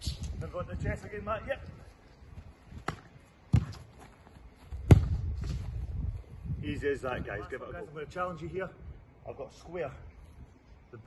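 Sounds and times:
football thudding: 2.8 - 4.0, 4.7 - 5.8.

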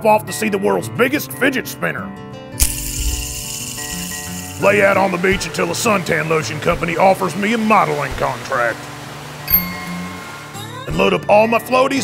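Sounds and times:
acoustic guitar music: 2.1 - 12.0.

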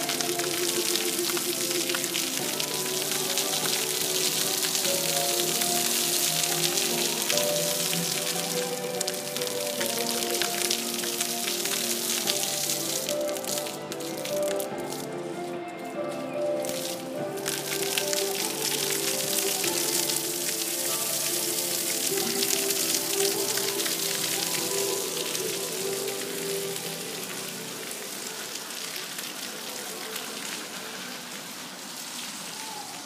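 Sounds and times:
music with slow sustained notes: 0.0 - 32.3
fountain water splashing into pool: 0.0 - 33.0.

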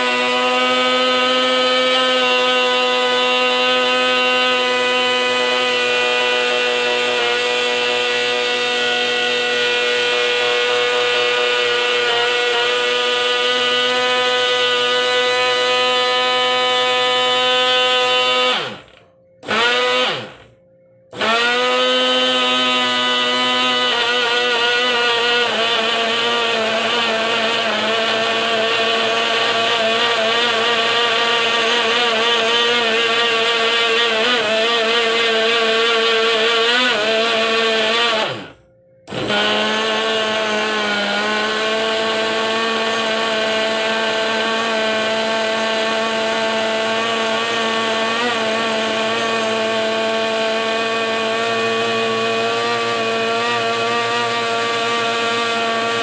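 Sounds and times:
blender motor whining: 0.0 - 56.0.

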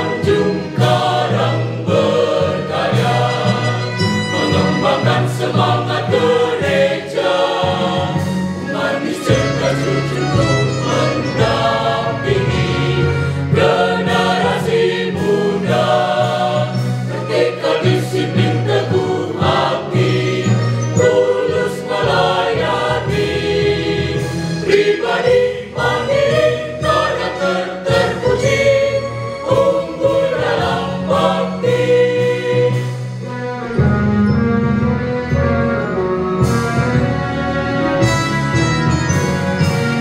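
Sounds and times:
mixed choir singing in parts: 0.0 - 33.4.

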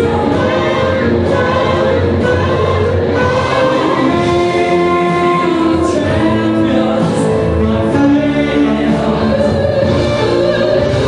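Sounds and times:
alto saxophone melody: 0.0 - 7.0
recorded accompaniment: 0.0 - 11.0.

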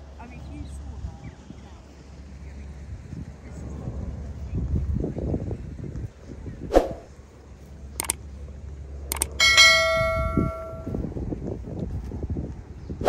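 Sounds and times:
wind rumble on microphone: 0.0 - 13.0
sharp click-like sound: 6.7 - 7.1, 8.0 - 8.2, 9.1 - 10.9
mouse clicks: 9.1 - 9.4
bright bell chime: 9.4 - 11.0.

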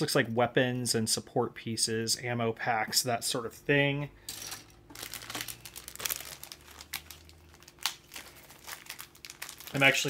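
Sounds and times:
plastic bags crinkling: 4.3 - 10.0.

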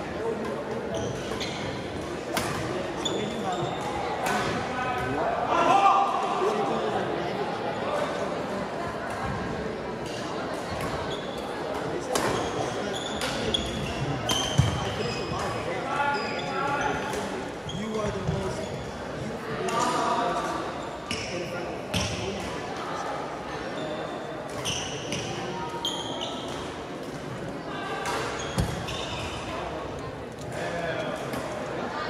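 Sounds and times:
sneaker squeaks on court floor: 0.9 - 4.5, 12.0 - 19.0, 23.6 - 26.8, 28.0 - 29.7.

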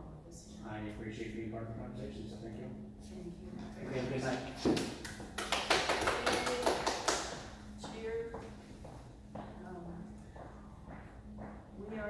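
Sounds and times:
people clapping: 3.9 - 7.6.

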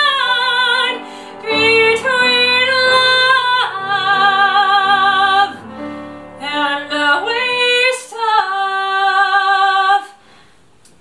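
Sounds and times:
woman singing: 0.0 - 10.2.

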